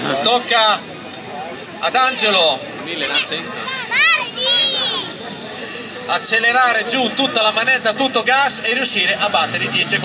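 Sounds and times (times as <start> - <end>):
crowd voices: 0.0 - 10.0
child's high-pitched call: 3.6 - 5.2.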